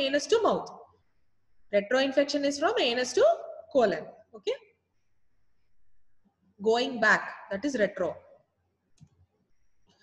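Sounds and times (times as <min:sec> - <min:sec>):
woman speaking: 0:00.0 - 0:00.8, 0:01.7 - 0:04.7, 0:06.6 - 0:08.3.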